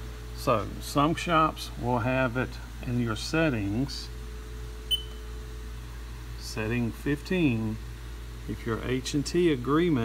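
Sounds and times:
steady low hum: 0:00.0 - 0:10.0
short high beep: 0:04.9 - 0:05.2.

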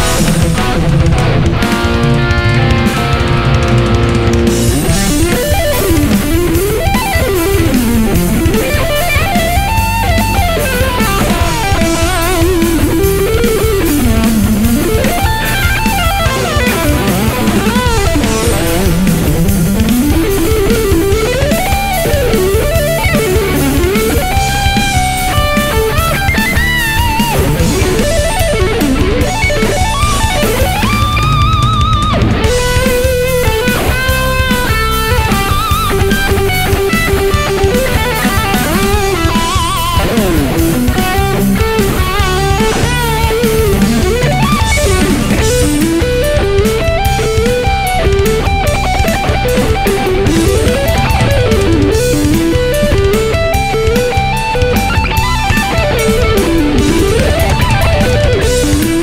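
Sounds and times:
backing with steady beat: 0:00.0 - 0:59.0
distorted electric guitar lead: 0:00.0 - 0:59.0.

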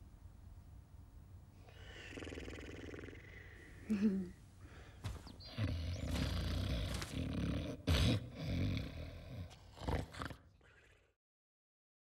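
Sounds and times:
deep rumbling snoring: 0:01.7 - 0:03.7, 0:05.4 - 0:11.0.

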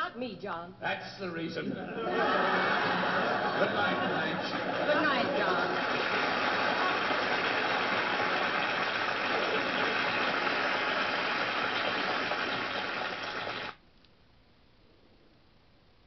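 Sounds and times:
studio audience applauding: 0:02.2 - 0:13.8.

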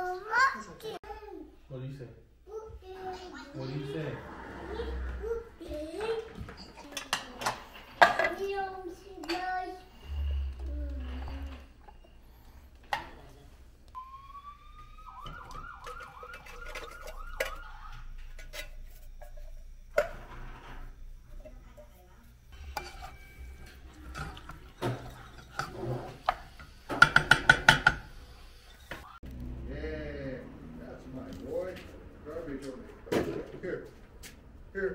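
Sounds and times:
utensils clinking on metal pot: 0:15.8 - 0:17.7, 0:21.3 - 0:28.0.

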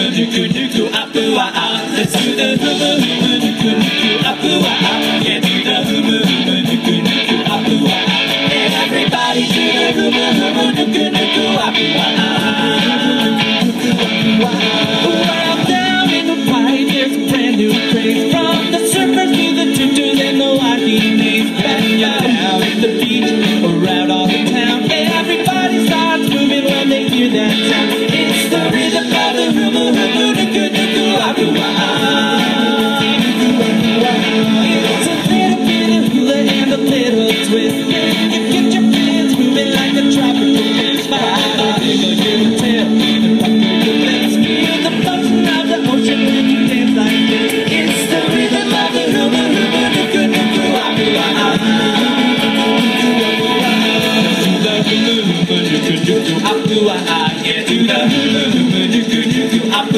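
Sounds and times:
voices singing along: 0:00.0 - 0:59.9.

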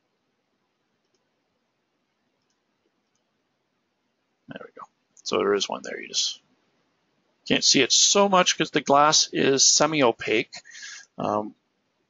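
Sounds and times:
computer mouse clicks: 0:01.0 - 0:01.3, 0:02.3 - 0:03.3.

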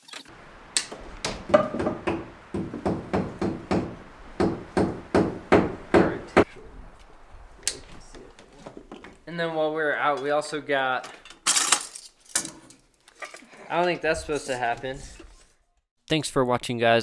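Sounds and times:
hammer striking wood: 0:00.8 - 0:06.5.

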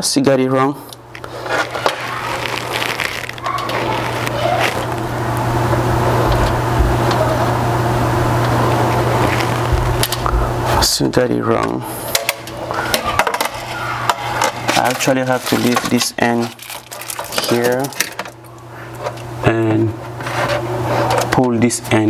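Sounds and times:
steady low hum: 0:00.0 - 0:22.0
fish tape scraping rattle: 0:01.2 - 0:05.1, 0:14.7 - 0:18.3.

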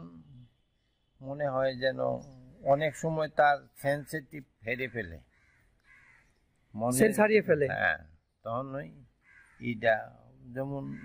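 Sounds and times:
man talking: 0:00.0 - 0:00.5, 0:01.2 - 0:05.2, 0:06.8 - 0:11.0.

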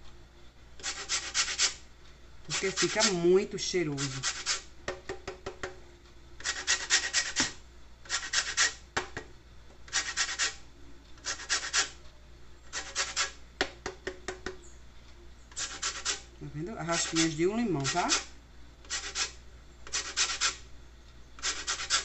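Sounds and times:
lime rasping on a grater: 0:00.8 - 0:01.8, 0:02.5 - 0:04.7, 0:06.4 - 0:08.8, 0:09.9 - 0:10.6, 0:11.2 - 0:12.0, 0:12.7 - 0:13.4, 0:15.5 - 0:20.6, 0:21.4 - 0:22.0.

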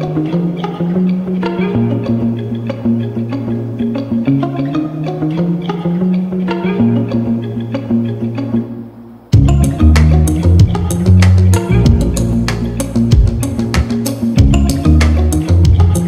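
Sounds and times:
light percussive beat: 0:09.3 - 0:16.0
sustained bass line: 0:09.4 - 0:16.0.

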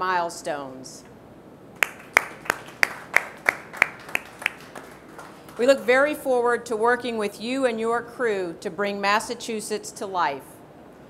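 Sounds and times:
hand clapping: 0:01.8 - 0:05.7.

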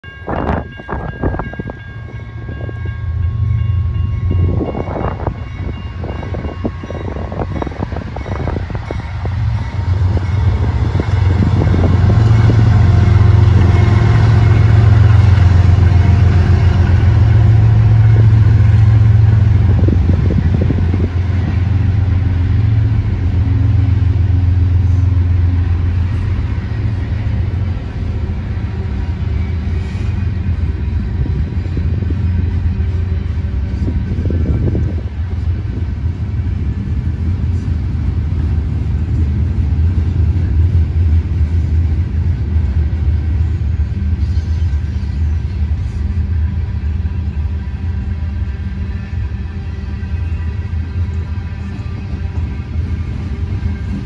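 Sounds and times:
freight cars rumbling: 0:00.0 - 0:54.0
locomotive engine drone: 0:00.0 - 0:54.0
train horn: 0:02.1 - 0:27.8.

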